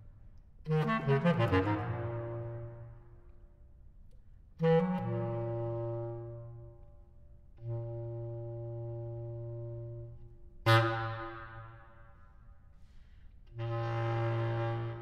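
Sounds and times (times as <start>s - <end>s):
bass clarinet low note: 0.7s - 3.0s, 4.6s - 11.8s, 13.5s - 15.0s.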